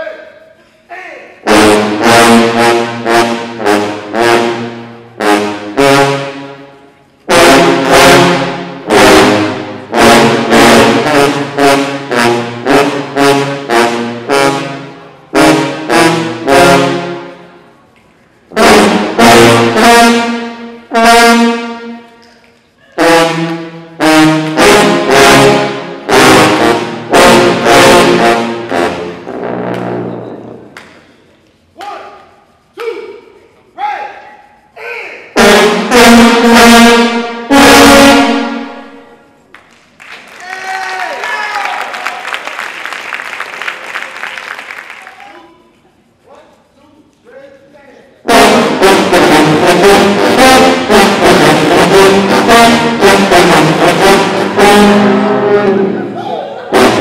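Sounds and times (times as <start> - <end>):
sousaphone ensemble brass chords: 1.3 - 17.8, 18.5 - 22.2, 22.9 - 30.8, 35.2 - 39.4, 48.2 - 57.0.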